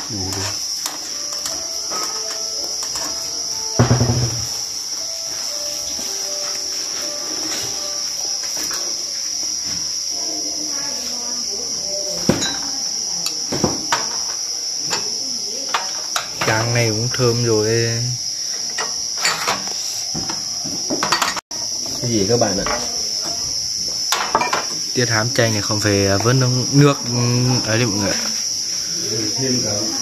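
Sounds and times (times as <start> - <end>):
crickets chirring: 0.0 - 30.0.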